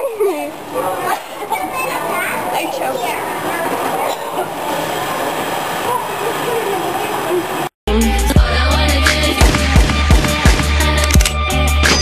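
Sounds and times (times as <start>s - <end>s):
children's voices and shouts echoing: 0.0s - 7.6s.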